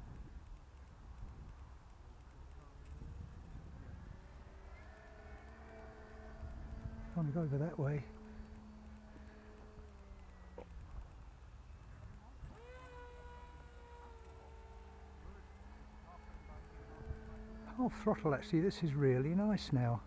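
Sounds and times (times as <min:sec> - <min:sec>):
electric motor propeller buzzing: 0:00.0 - 0:20.0.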